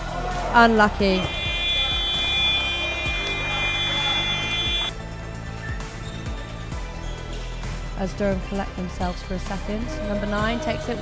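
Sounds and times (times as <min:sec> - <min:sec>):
background music: 0:00.0 - 0:11.0
game buzzer long harsh tone: 0:00.9 - 0:04.9.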